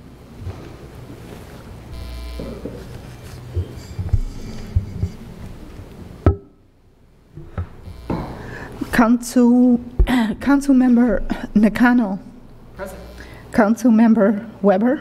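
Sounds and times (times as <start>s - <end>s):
open microphone room noise: 0.0s - 15.0s.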